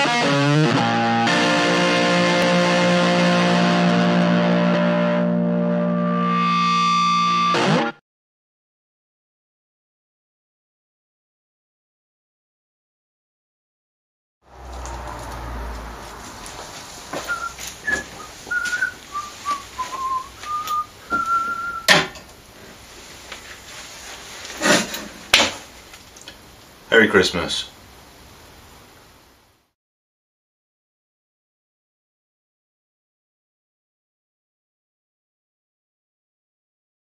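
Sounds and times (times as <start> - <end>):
distorted electric guitar chord: 0.0 - 8.0
person whistling a melody: 17.2 - 22.0
sharp knock: 21.8 - 22.2.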